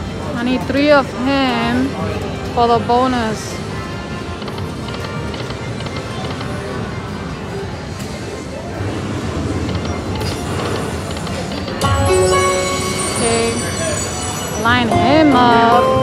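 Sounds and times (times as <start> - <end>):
murmur of casino crowd: 0.0 - 16.0
slot machine music and sound effects: 9.4 - 16.0.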